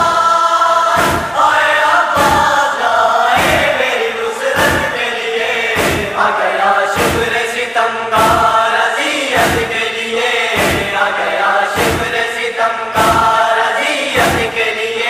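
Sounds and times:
chorus of voices chanting: 0.0s - 15.0s.

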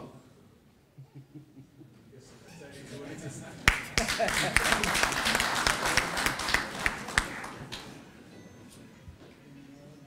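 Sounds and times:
audience applause: 3.6s - 7.9s.

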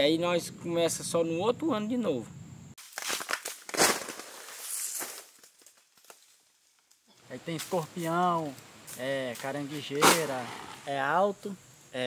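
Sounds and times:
dry vegetation rustling: 2.8s - 10.8s.

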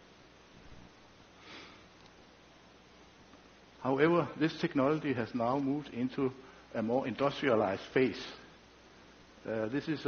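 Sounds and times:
faint microphone hiss: 0.0s - 10.0s
man sniffing: 1.4s - 1.9s.

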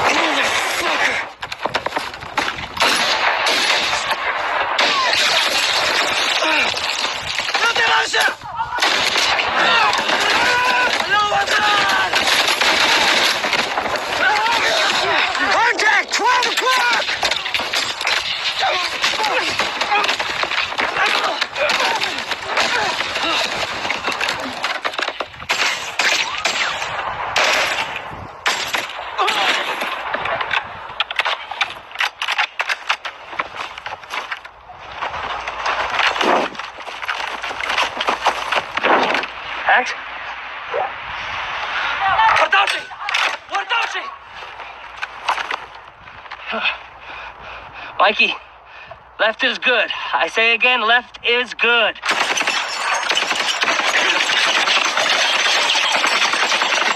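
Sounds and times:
automatic rifle fire: 2.8s - 6.4s, 8.8s - 15.4s, 52.0s - 56.9s
single gunshots: 2.8s - 6.4s, 16.4s - 31.7s
men shouting: 9.4s - 12.4s.

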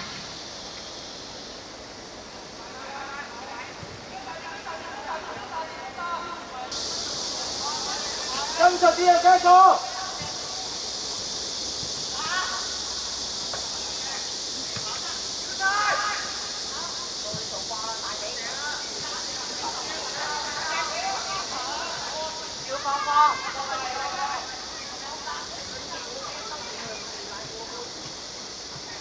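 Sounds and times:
steady high hiss: 0.0s - 29.0s
players shouting: 7.2s - 10.8s, 13.9s - 27.6s.

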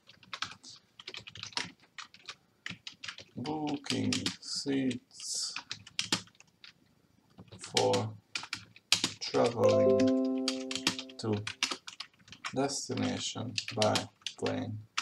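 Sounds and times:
typing on computer keyboard: 0.0s - 4.4s, 5.4s - 15.0s.

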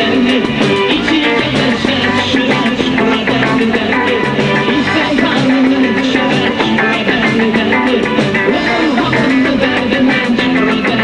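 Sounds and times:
guitar-led band music: 0.0s - 11.0s.

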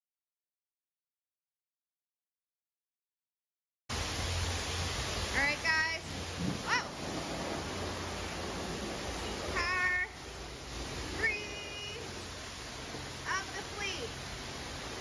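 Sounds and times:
pressure washer spraying water: 3.9s - 15.0s.

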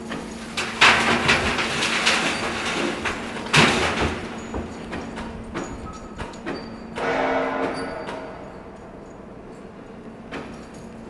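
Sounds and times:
loud metal crashes: 0.6s - 4.6s, 7.0s - 9.0s.

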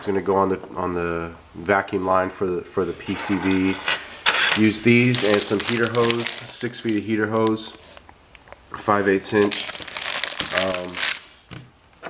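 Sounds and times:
plastic packaging crinkling: 4.3s - 11.6s.

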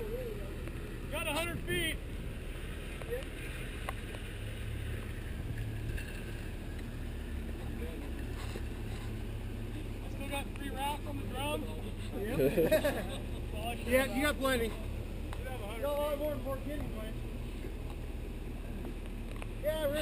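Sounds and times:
truck engine idling: 0.0s - 20.0s.

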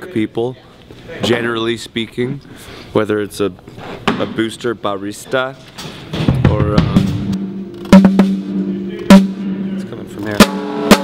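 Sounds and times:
sharp drum strikes: 6.1s - 11.0s.

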